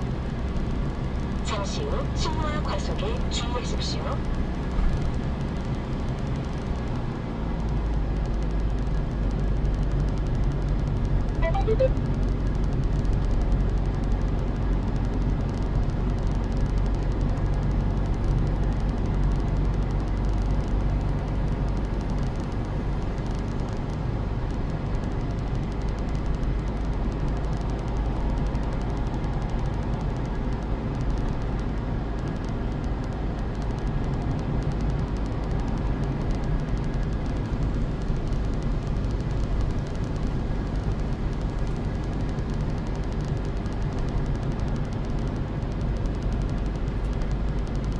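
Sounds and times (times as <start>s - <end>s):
car engine hum: 0.0s - 47.9s.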